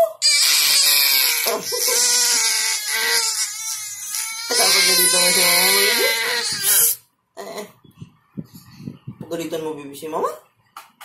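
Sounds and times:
infant crying and screaming: 0:00.2 - 0:07.0
infant whimpering: 0:00.2 - 0:07.0.

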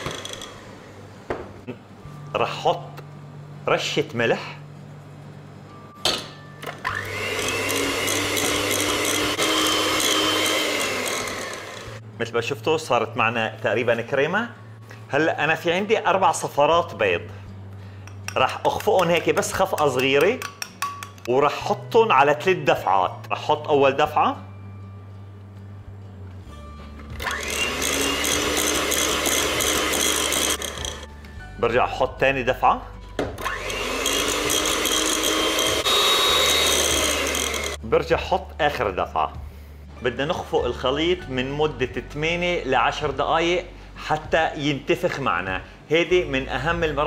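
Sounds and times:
electric hand mixer running: 0:06.9 - 0:12.0, 0:27.2 - 0:31.1, 0:33.4 - 0:37.8.

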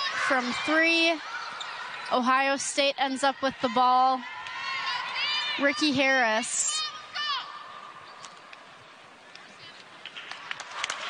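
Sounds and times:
sneakers squeaking: 0:00.0 - 0:03.8
arena crowd noise: 0:00.0 - 0:11.0.

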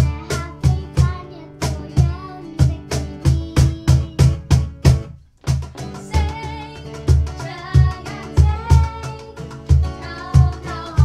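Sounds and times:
girl singing: 0:00.0 - 0:04.6, 0:05.8 - 0:11.0
cajon beat: 0:00.0 - 0:11.0
strummed acoustic guitar: 0:00.0 - 0:11.0.

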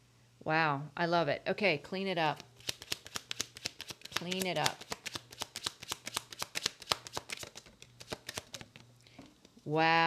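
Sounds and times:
cards being shuffled: 0:02.4 - 0:08.9.

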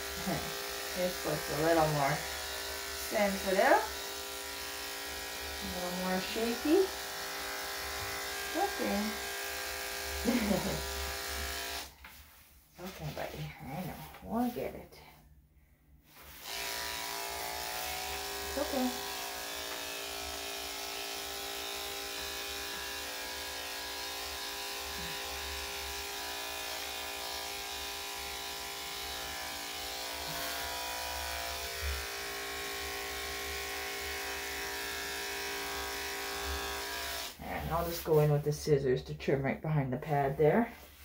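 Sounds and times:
electric clippers buzzing: 0:00.0 - 0:12.0, 0:16.2 - 0:37.4.

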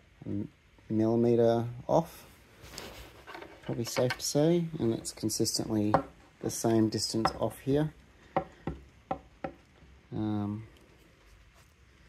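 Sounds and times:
hand tool tapping on wood: 0:08.4 - 0:09.6.

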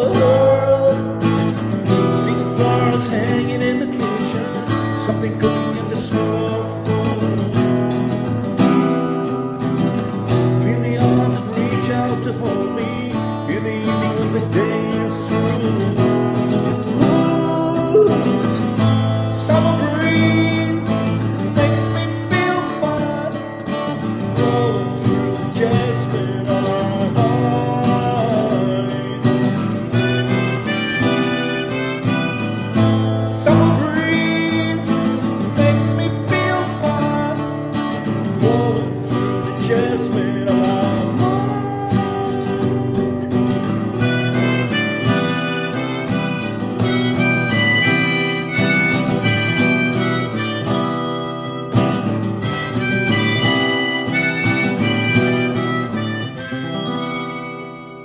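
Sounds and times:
guitar accompaniment: 0:00.0 - 0:58.0
harmonica melody: 0:00.0 - 0:58.0.

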